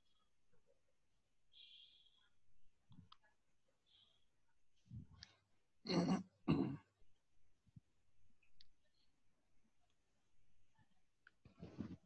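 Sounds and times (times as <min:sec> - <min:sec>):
man clearing his throat: 0:05.9 - 0:06.9.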